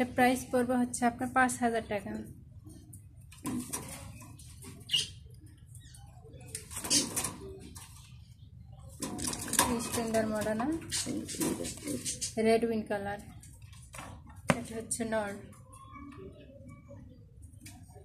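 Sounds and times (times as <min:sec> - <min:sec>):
pigeon wings fluttering against wire: 0:09.0 - 0:12.4.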